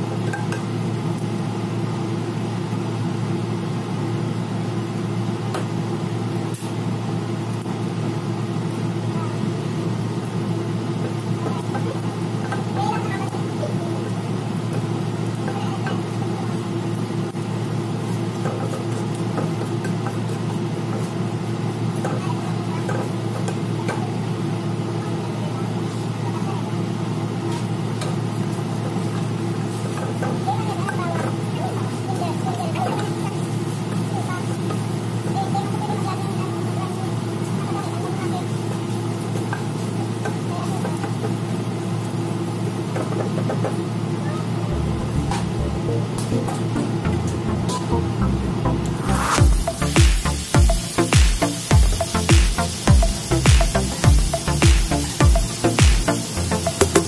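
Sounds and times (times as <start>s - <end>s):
ginger frying in oil: 0.0s - 57.0s
low mechanical hum: 0.0s - 57.0s
wooden spatula stirring in wok: 13.4s - 24.9s, 38.4s - 44.2s.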